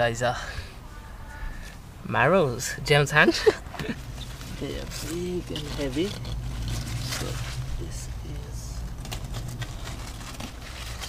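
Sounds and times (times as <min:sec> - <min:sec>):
steady low rumble: 0:00.1 - 0:11.0
leaves rustling and crackling: 0:03.8 - 0:11.0.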